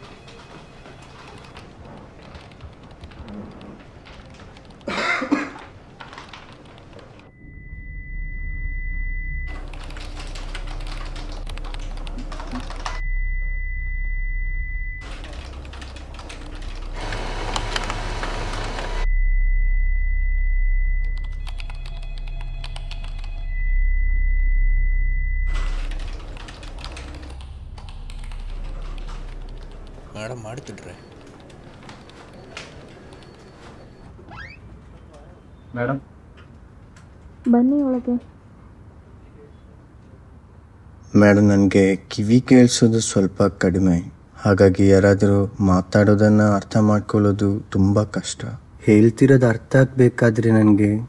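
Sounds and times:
computer keyboard typing: 0.0s - 5.0s, 5.9s - 7.3s, 9.5s - 13.0s, 15.0s - 18.9s, 21.1s - 23.5s, 25.5s - 34.0s
high ringing tone: 7.3s - 10.7s, 12.9s - 15.1s, 19.0s - 34.6s
deep low drone: 7.3s - 31.8s.

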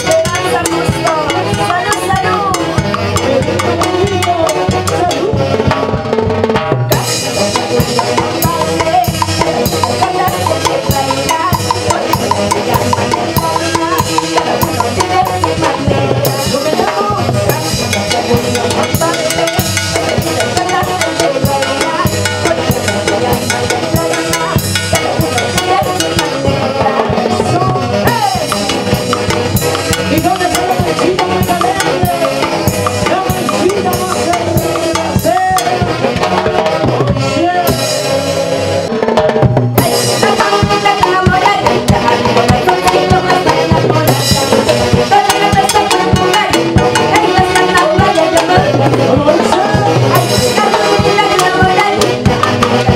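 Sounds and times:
saxophones and clarinets playing: 0.0s - 6.1s, 7.0s - 38.9s, 39.8s - 52.9s
steady drum beat: 0.0s - 52.9s.

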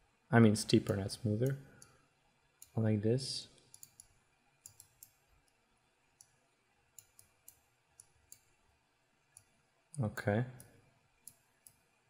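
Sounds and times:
faint computer mouse clicks: 3.6s - 5.6s, 7.0s - 8.5s, 10.6s - 11.8s.

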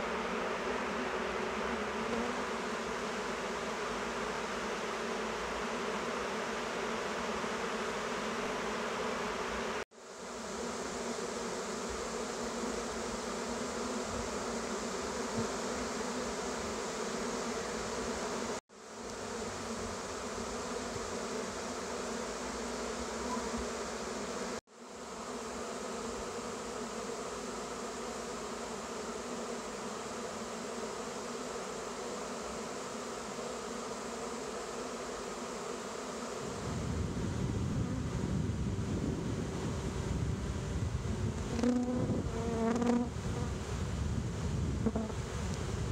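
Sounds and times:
bee swarm buzzing: 0.0s - 45.9s.

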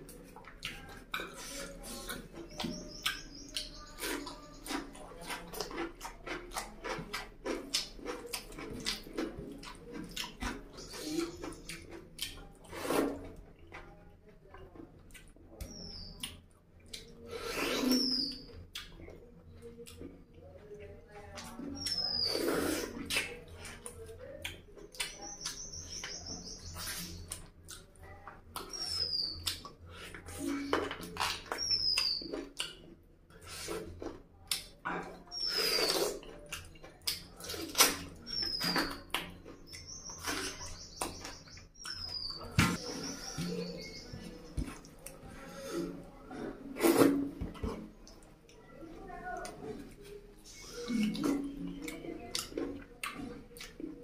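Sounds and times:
chewing and smacking mouth noises: 0.0s - 48.7s, 49.4s - 54.0s
small bird chirping: 1.4s - 5.0s, 15.6s - 16.4s, 17.6s - 18.6s, 21.6s - 23.0s, 25.0s - 27.4s, 28.0s - 29.7s, 31.2s - 32.7s, 35.2s - 36.2s, 38.2s - 44.6s.

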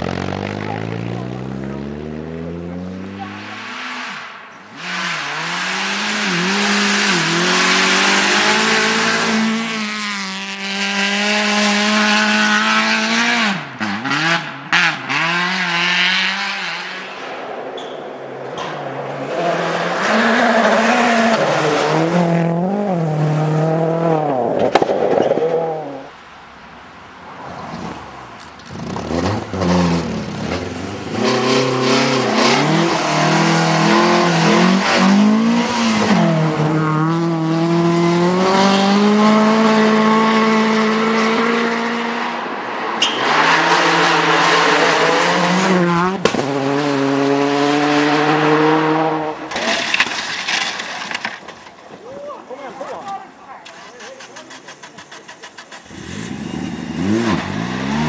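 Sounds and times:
rally car engines at full throttle: 0.0s - 26.2s, 27.0s - 58.0s.

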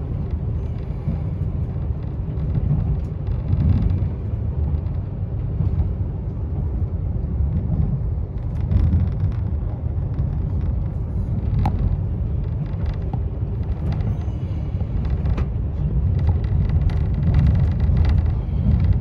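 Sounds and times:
train rumble from inside carriage: 0.0s - 19.0s.

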